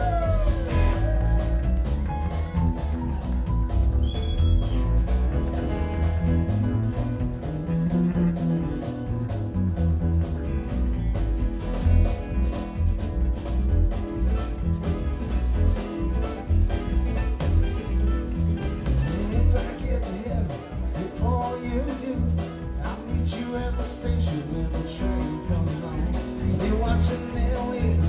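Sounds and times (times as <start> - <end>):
drum kit beat: 0.0 - 28.0
electric bass: 0.0 - 28.0
keyboards: 0.0 - 28.0.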